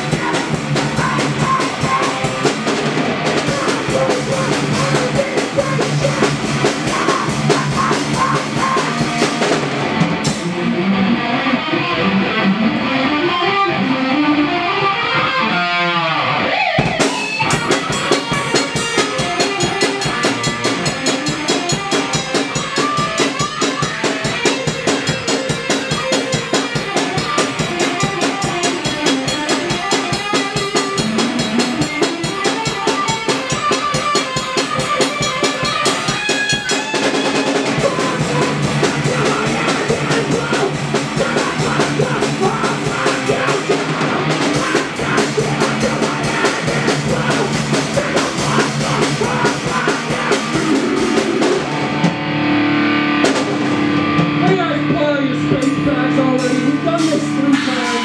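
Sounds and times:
fast drum beat: 0.0s - 10.4s, 16.8s - 51.8s, 56.4s - 58.0s
electric guitar riff: 0.0s - 58.0s.

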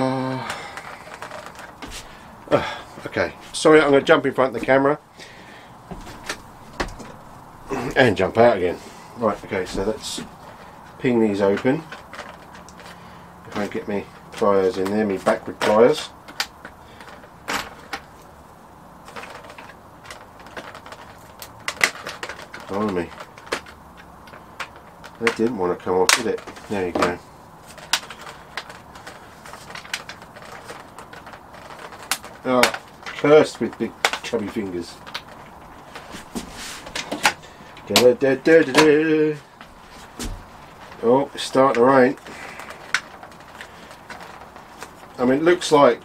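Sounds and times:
scraping rustle: 0.0s - 46.0s.

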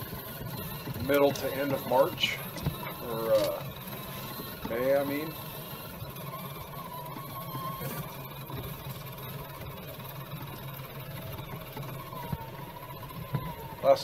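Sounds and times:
electric motor and gear whine: 0.0s - 14.0s.

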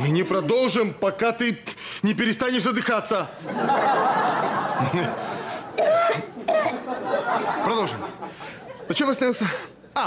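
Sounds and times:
person coughing and gasping: 5.7s - 6.9s.

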